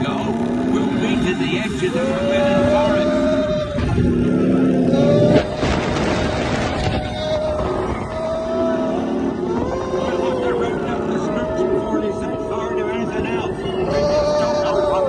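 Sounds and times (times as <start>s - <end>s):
roller coaster train rumbling on track: 0.0s - 15.0s.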